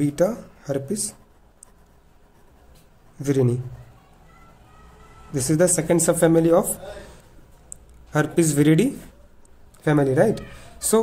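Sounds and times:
pen scratching on paper: 0.2 - 3.9.

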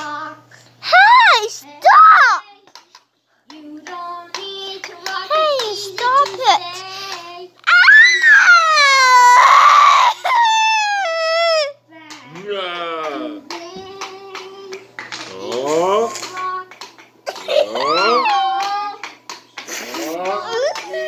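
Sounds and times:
young child squealing: 7.6 - 11.8.

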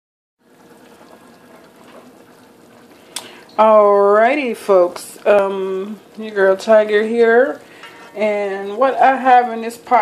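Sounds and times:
stew bubbling in a pot: 0.4 - 10.0.

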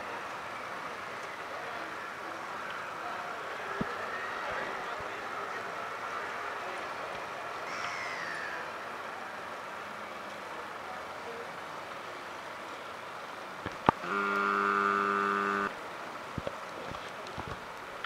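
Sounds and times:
city traffic hum: 0.0 - 18.0
loud horn blast: 14.0 - 15.7.

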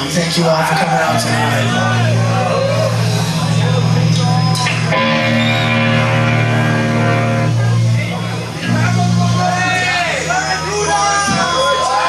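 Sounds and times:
thrash metal band playing: 0.0 - 12.0.

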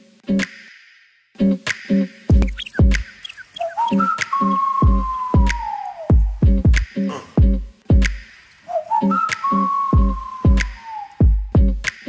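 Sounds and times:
synth chirps: 2.3 - 6.1
whistling synth tone: 2.3 - 6.4, 8.7 - 11.4.

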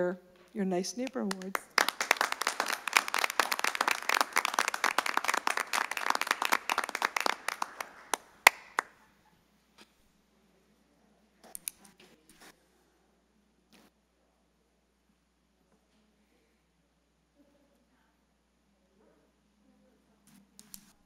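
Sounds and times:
audience applauding: 1.1 - 9.0.

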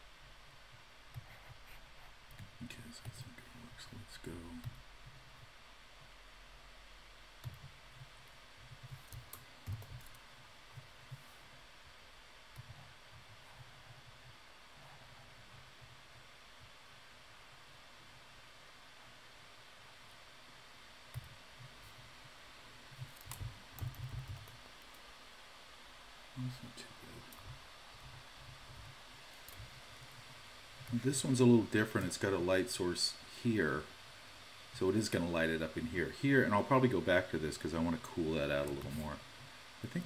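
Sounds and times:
room hiss: 0.0 - 40.0.

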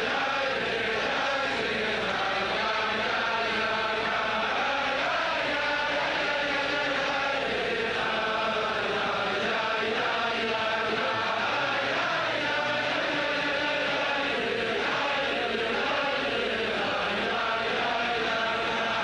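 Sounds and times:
crowd of men singing: 0.0 - 19.0.

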